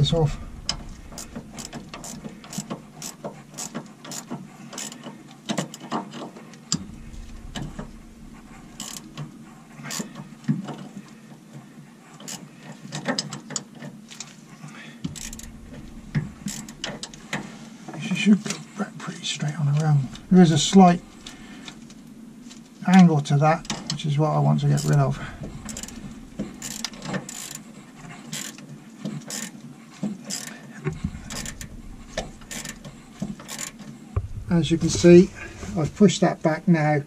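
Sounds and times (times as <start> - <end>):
spanner clicking on nuts: 0.7 - 6.2, 8.7 - 9.3, 9.9 - 10.1, 15.1 - 17.4, 24.8 - 27.6, 28.3 - 29.6, 30.3 - 33.9.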